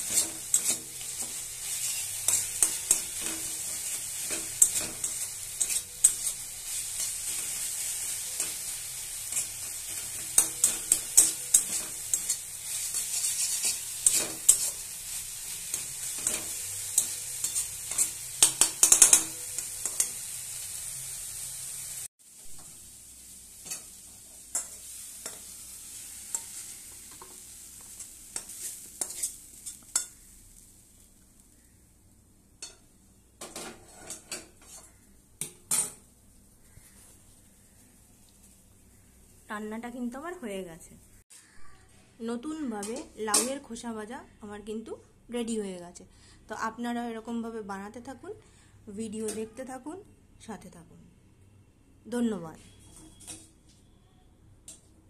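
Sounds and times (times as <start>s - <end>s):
spatula scraping a metal wok: 0.0s - 20.4s, 23.6s - 30.4s, 33.4s - 35.1s, 52.7s - 53.6s
frying sizzle: 0.0s - 41.6s.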